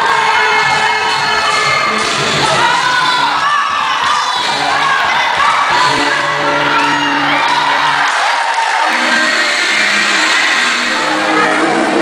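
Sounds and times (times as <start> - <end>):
crowd cheering: 0.0 - 12.0
dance music: 0.0 - 12.0.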